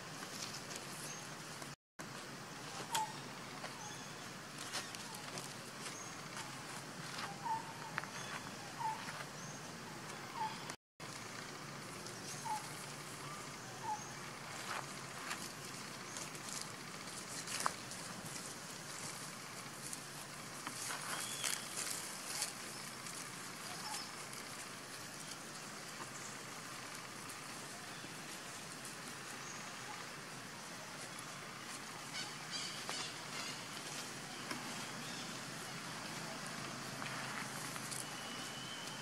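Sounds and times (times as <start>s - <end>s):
rustling in grass and leaves: 0.0s - 39.0s
steady outdoor hiss: 0.0s - 39.0s.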